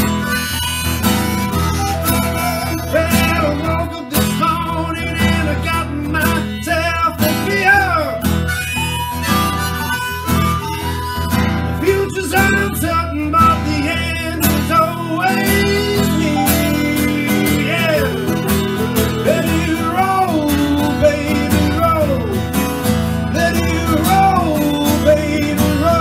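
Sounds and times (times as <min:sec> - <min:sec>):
blues harmonica: 0:00.0 - 0:26.0
electric guitar: 0:00.0 - 0:26.0
strummed acoustic guitar: 0:00.0 - 0:26.0.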